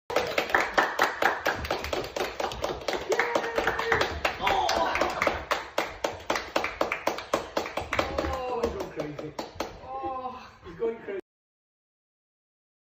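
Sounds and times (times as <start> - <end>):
people clapping in rhythm: 0.0 - 10.0.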